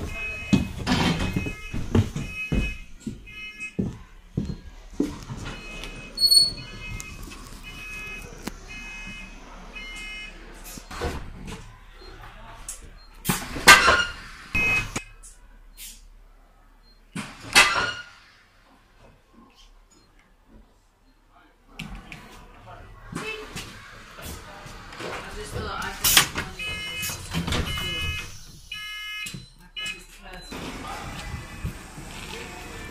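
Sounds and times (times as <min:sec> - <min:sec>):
steady beep: 0:00.0 - 0:04.7, 0:05.6 - 0:10.4, 0:14.6 - 0:15.2
bus door warning beeps: 0:00.0 - 0:04.8, 0:05.4 - 0:16.1, 0:25.8 - 0:31.4
bus doors air bursts: 0:13.2 - 0:15.0, 0:15.8 - 0:16.1, 0:17.2 - 0:18.7.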